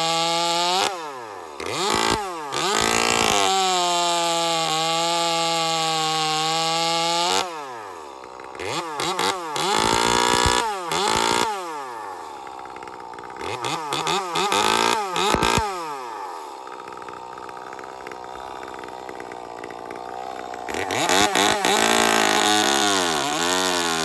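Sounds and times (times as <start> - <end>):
chainsaw revving and idling: 0.0 - 24.0.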